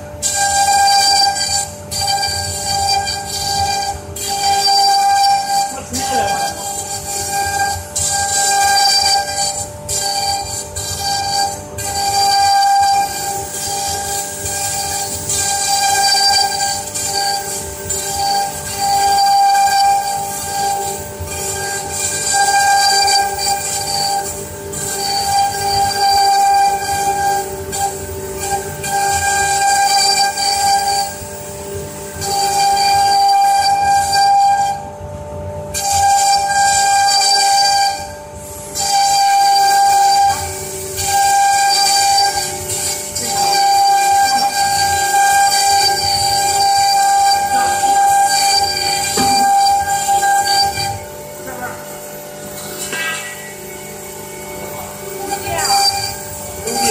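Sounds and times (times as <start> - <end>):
router bits cutting wood: 0.0 - 34.2, 38.8 - 51.9, 54.4 - 56.9
router spindles whining: 0.0 - 34.9, 35.8 - 56.9.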